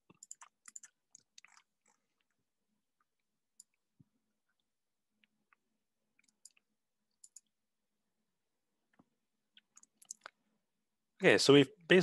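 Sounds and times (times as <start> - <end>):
computer mouse clicks: 0.0 - 2.3, 3.5 - 3.8, 6.2 - 7.6, 8.9 - 10.4.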